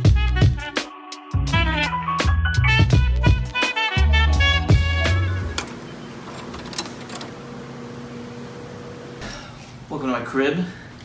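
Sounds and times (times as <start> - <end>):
door lock and handle clicks: 5.4 - 7.4.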